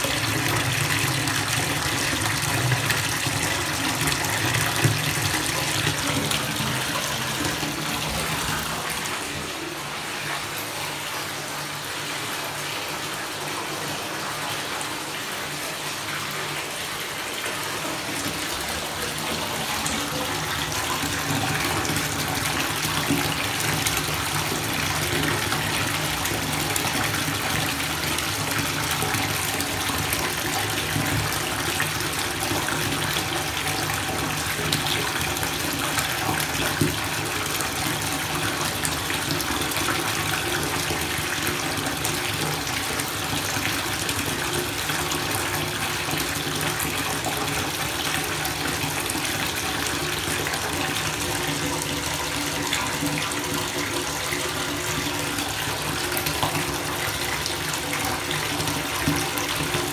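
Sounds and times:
faucet water pouring into tub: 0.0 - 59.9.

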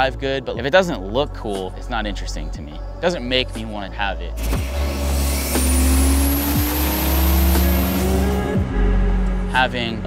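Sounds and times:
car engine accelerating: 4.3 - 10.0.

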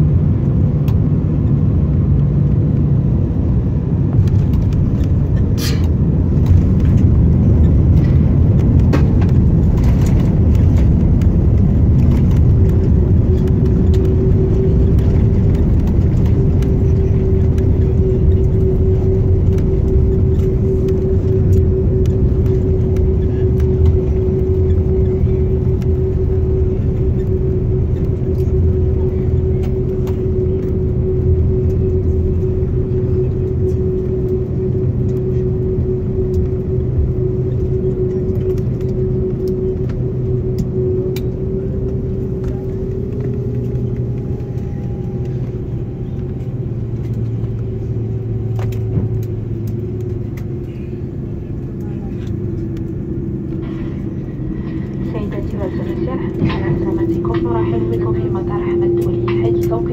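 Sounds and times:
low rumble of engines and wheels: 0.0 - 59.9
steady hum: 0.0 - 59.9.

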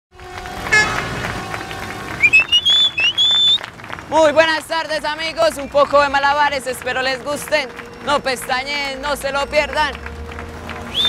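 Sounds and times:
street traffic: 0.1 - 11.0
car horn toot: 0.2 - 3.6
rising whistle-like tones: 0.7 - 3.7.

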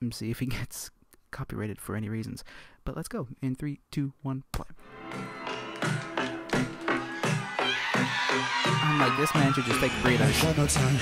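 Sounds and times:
live band playing: 4.9 - 7.6
drums beating: 5.1 - 11.0.

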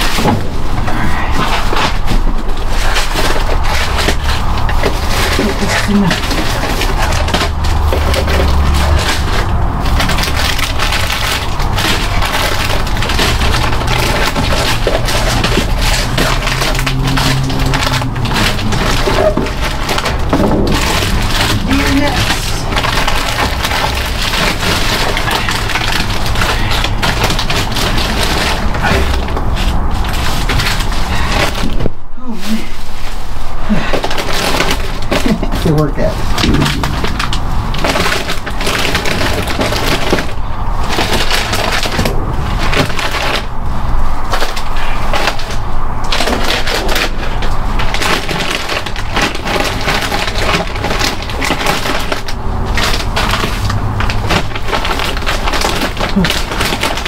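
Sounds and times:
plastic bags rustling and crinkling: 0.0 - 57.0.

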